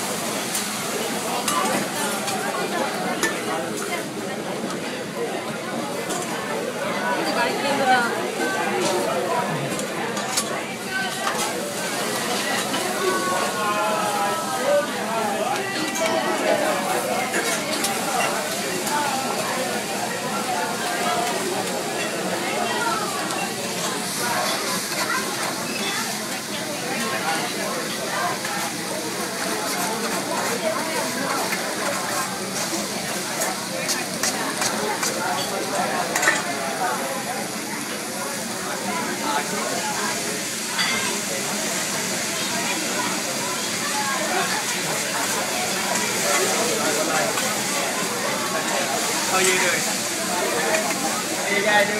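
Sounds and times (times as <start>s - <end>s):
food sizzling on a griddle: 0.0s - 51.9s
people talking: 0.0s - 51.9s.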